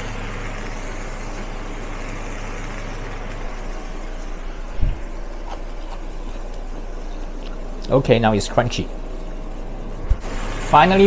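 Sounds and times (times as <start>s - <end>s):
induction cooker humming: 0.0s - 11.0s.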